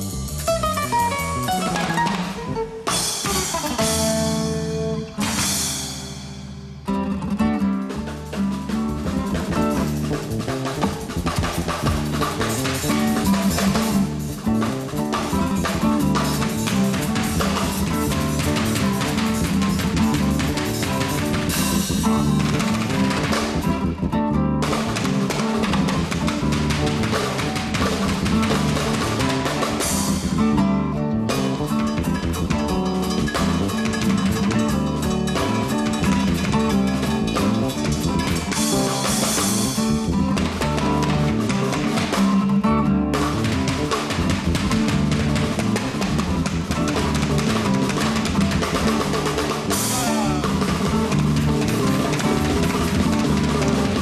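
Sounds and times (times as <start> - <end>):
drum kit and cymbals: 0.0 - 24.0, 24.6 - 42.6, 43.2 - 54.0
acoustic guitar: 0.0 - 54.0
electric bass: 0.0 - 54.0.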